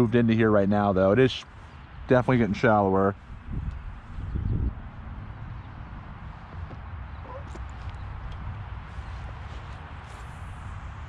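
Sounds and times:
wind rumble on microphone: 2.0s - 11.0s.

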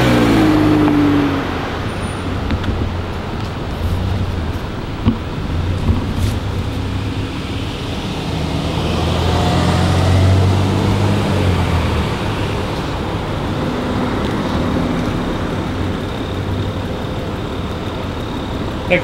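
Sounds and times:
traffic rush: 0.0s - 19.0s
vehicle engine hum passing: 0.0s - 19.0s.

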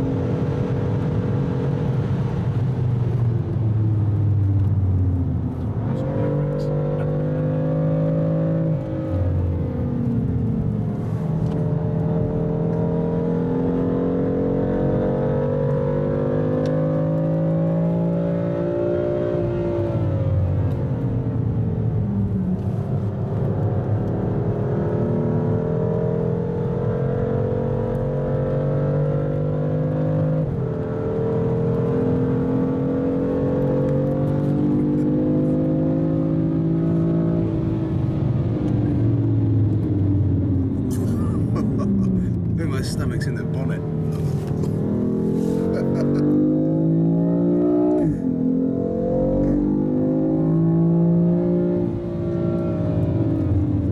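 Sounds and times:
car engine revving: 0.0s - 53.9s.

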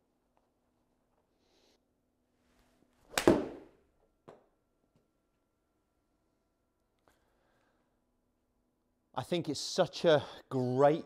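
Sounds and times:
golf club striking ball: 3.1s - 3.7s.

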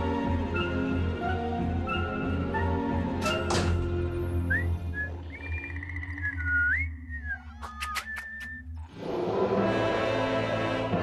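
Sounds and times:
whistled tune with sliding pitch: 4.4s - 8.8s
sharp clicks: 7.6s - 8.6s.

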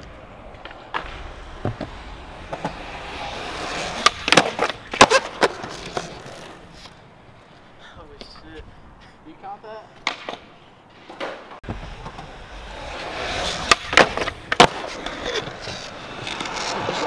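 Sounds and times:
skateboard clacking on ground: 0.0s - 7.0s, 10.0s - 17.0s
skateboard wheels rolling on concrete: 0.0s - 17.0s.

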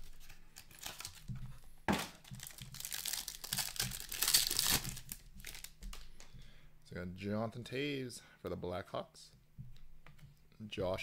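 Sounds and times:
foil wrapper crinkling and tearing: 0.0s - 1.3s, 2.2s - 6.1s.

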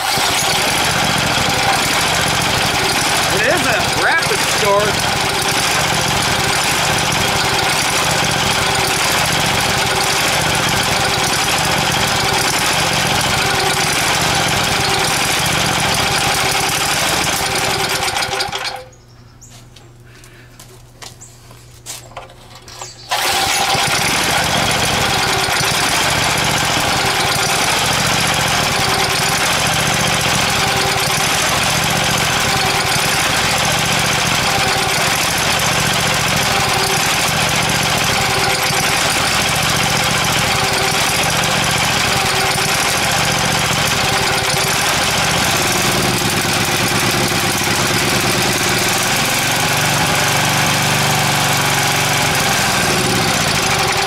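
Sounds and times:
small engine starting and running: 0.0s - 19.0s, 22.8s - 54.0s.

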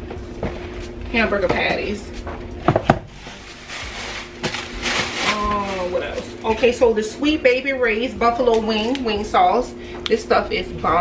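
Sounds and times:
groceries knocking on shelves: 0.4s - 6.4s
packages rustling: 3.0s - 6.5s.

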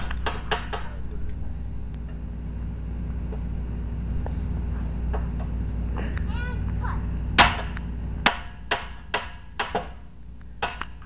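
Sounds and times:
sharp knocks: 0.0s - 1.0s, 7.4s - 10.0s, 10.6s - 11.0s
low background hum: 0.0s - 11.0s.

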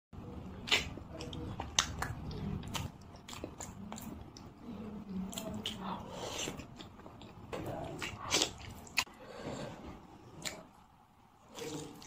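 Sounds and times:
person chewing food: 0.6s - 12.0s.

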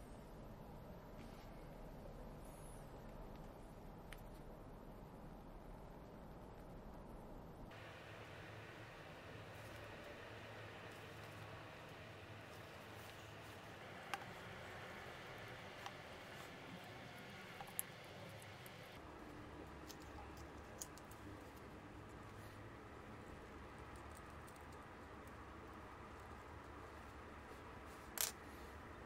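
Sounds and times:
faint steady hiss: 0.0s - 29.0s.

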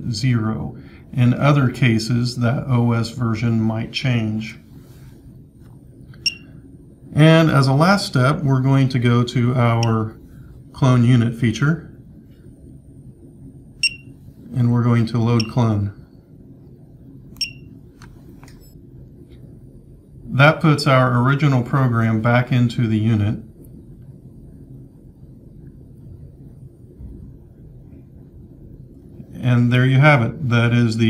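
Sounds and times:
faint room hum: 0.0s - 31.0s
short electronic beep: 6.2s - 6.5s, 13.8s - 14.1s, 17.4s - 17.7s.

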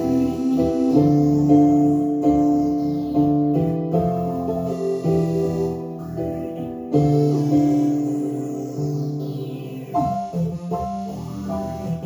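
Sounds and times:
keyboard playing held chords: 0.0s - 12.0s.

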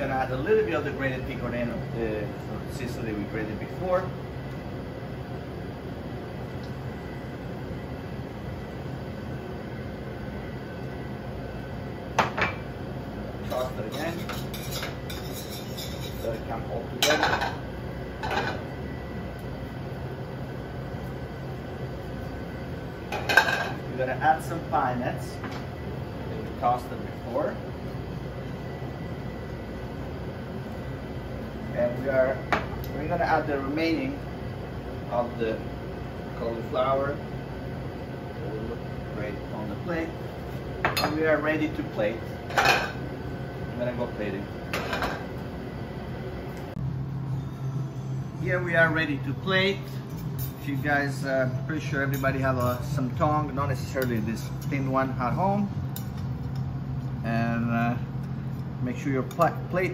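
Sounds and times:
kitchen background hum: 0.0s - 59.9s.

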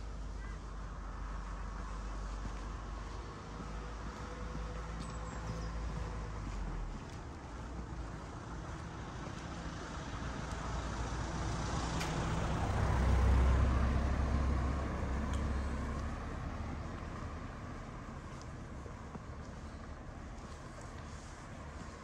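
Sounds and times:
car driving slowly past: 0.0s - 22.0s.

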